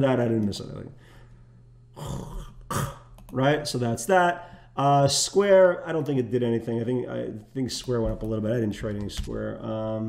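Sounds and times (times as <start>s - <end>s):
man clearing his throat: 2.0s - 3.1s.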